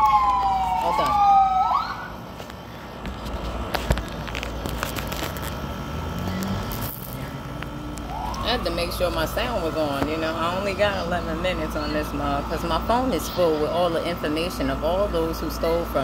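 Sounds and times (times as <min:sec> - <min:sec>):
emergency vehicle siren wailing: 0:00.0 - 0:02.3, 0:07.4 - 0:09.8
phone being handled: 0:02.4 - 0:05.6.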